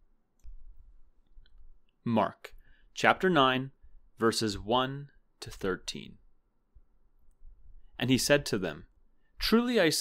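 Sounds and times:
man reading aloud: 2.0 - 6.3, 7.9 - 10.0.

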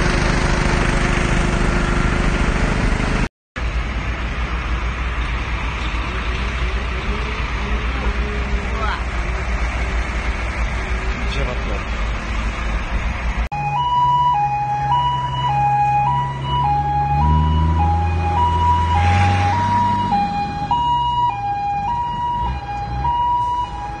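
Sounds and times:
vehicle engine hum: 0.0 - 24.0
two-tone siren: 13.5 - 24.0.

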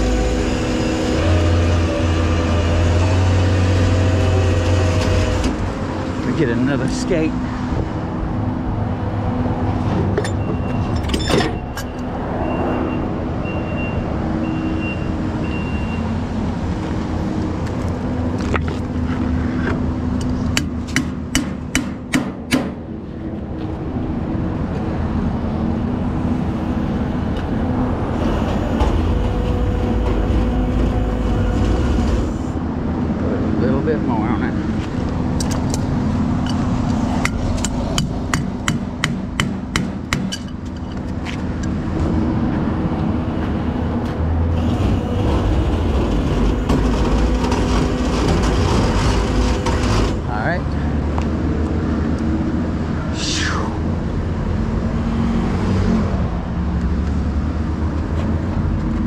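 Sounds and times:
truck engine running: 0.0 - 12.1, 16.2 - 53.0
sharp metallic knocks: 20.5 - 22.8, 35.4 - 41.1.

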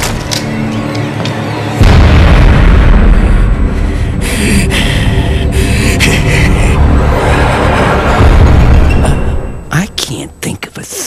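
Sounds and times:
dramatic music: 0.0 - 10.8
deep boom: 1.8 - 5.1, 6.7 - 9.7
loud low rumble: 1.8 - 9.9.

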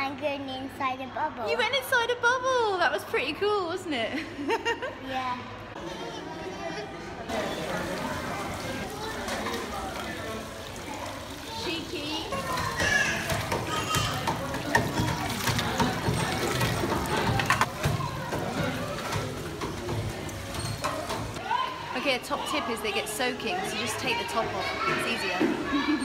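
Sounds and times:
children's voices: 5.0 - 7.3, 8.3 - 19.7, 21.0 - 26.0
water running and splashing: 7.3 - 25.9
plastic toys knocking on metal: 12.7 - 21.4.

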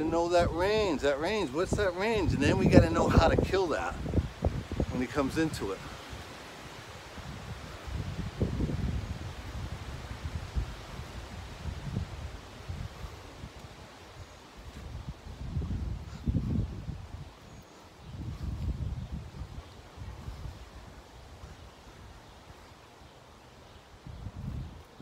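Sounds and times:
leaves rustling: 0.0 - 25.0
wind buffeting microphone: 0.0 - 25.0.

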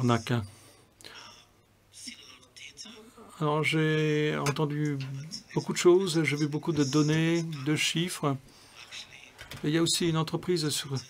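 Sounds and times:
person speaking: 0.0 - 11.0
faint breathy whispering: 0.2 - 3.6, 8.4 - 9.8.

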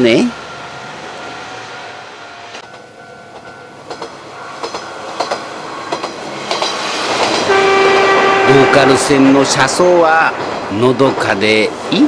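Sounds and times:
diesel railcar running: 0.0 - 12.0
wheels clicking over rail joints: 2.6 - 8.4.

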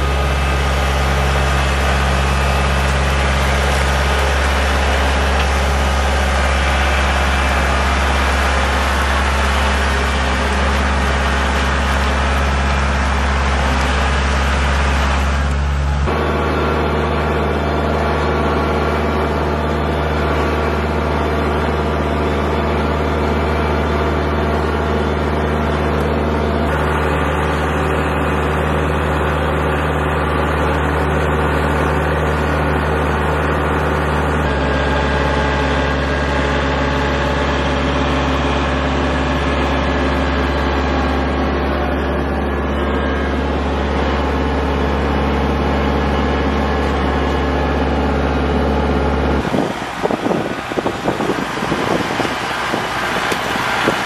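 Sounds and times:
tractor diesel engine running: 0.0 - 54.0
wind noise on microphone: 49.4 - 54.0.

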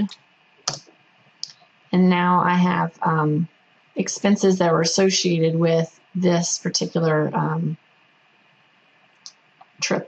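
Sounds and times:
computer mouse clicks: 0.1 - 1.6.

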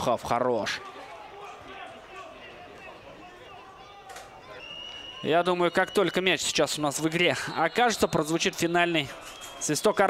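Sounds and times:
sparse crowd: 0.0 - 10.0
distant voices of players: 0.8 - 10.0.

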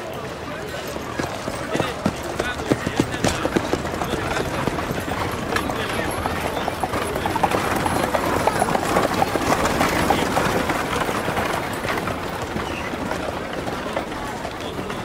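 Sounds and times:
horse hooves clip-clopping: 0.0 - 15.0
indistinct voices: 0.0 - 15.0.

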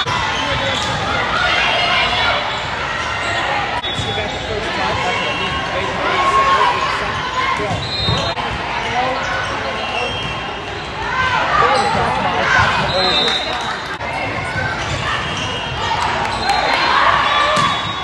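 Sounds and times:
people calling and shouting: 0.0 - 18.0
sneakers squeaking: 0.0 - 18.0.

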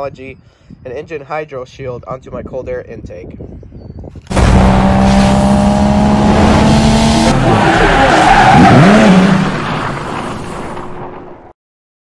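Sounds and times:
car engine with rushing noise: 4.3 - 11.5.

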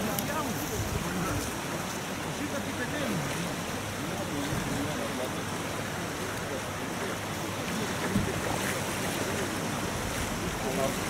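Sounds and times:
small waves lapping on shore: 0.0 - 11.0.

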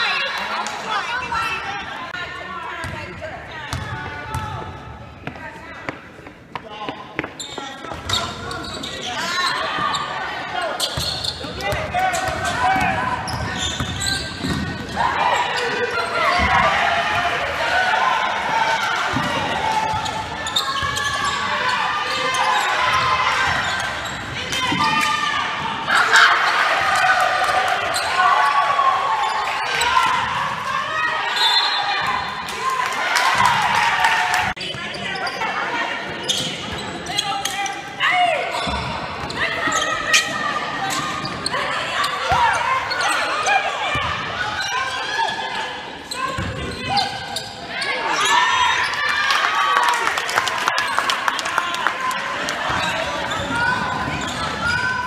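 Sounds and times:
people shouting in gym: 11.4 - 50.1, 51.5 - 55.0.

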